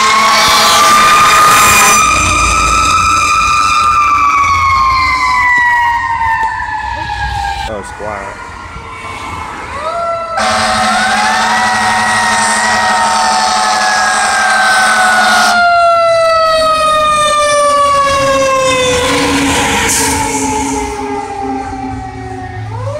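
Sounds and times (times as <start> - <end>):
fire truck siren wailing: 0.0 - 22.9.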